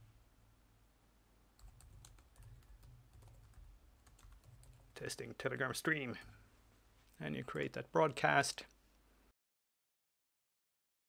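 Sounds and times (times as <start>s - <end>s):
typing on a keyboard: 1.6s - 5.0s.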